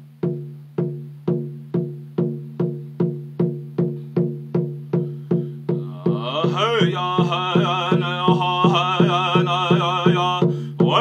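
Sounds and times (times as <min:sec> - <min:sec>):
large drum beating: 0:00.2 - 0:11.0.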